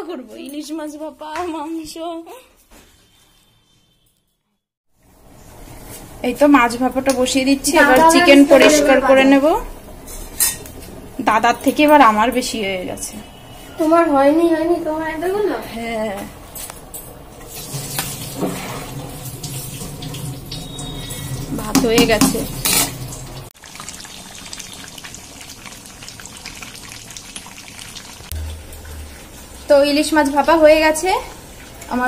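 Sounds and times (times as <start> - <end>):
sauce bubbling and popping: 23.4 - 29.6.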